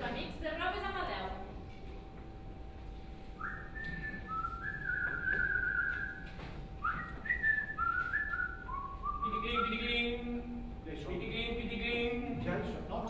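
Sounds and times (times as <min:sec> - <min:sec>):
person whistling a tune: 0:03.4 - 0:09.7.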